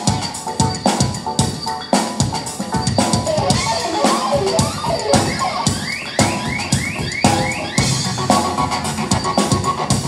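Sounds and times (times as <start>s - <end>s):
drum kit playing fast: 0.0s - 10.0s.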